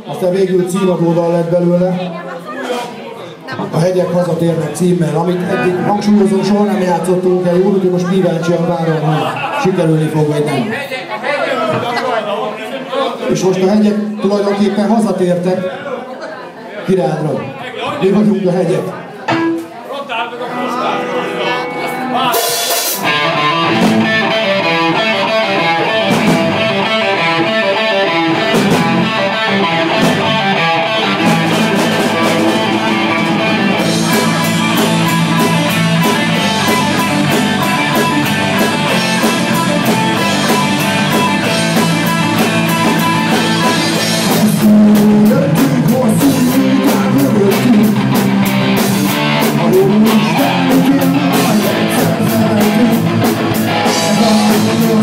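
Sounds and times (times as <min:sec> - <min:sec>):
picked electric guitar: 0:19.3 - 0:19.8, 0:20.5 - 0:55.0
drums and cymbals: 0:22.2 - 0:24.6, 0:25.8 - 0:27.3, 0:28.3 - 0:55.0.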